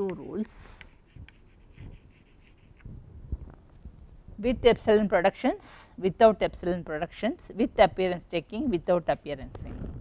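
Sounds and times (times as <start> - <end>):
chalk scratching on chalkboard: 0.0 - 2.9.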